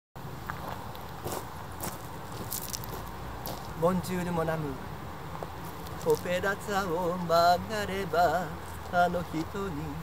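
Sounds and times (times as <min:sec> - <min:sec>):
low outdoor rumble: 0:00.2 - 0:10.0
soft footsteps: 0:00.4 - 0:03.8, 0:05.3 - 0:06.4.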